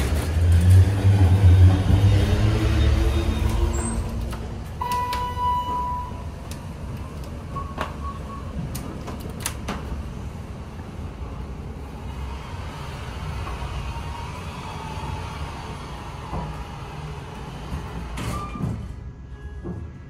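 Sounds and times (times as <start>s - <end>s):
elevator car humming: 0.0s - 20.0s.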